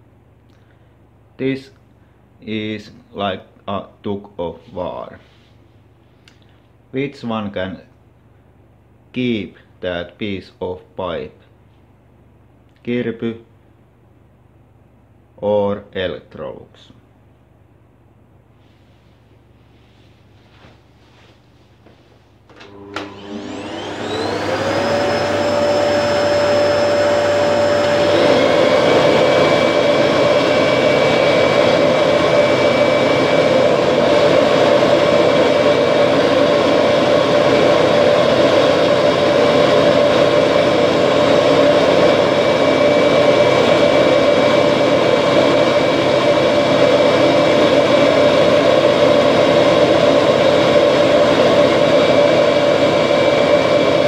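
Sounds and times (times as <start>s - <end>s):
vacuum cleaner motors whining: 22.5s - 54.0s.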